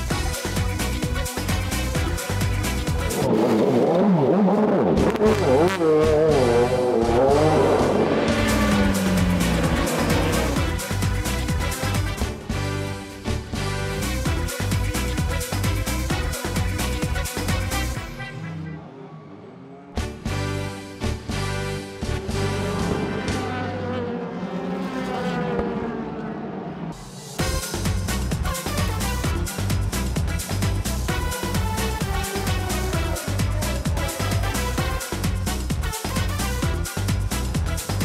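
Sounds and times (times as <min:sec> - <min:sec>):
racing car engine: 0:00.0 - 0:38.0
music with steady beat: 0:05.6 - 0:12.8, 0:27.4 - 0:38.0.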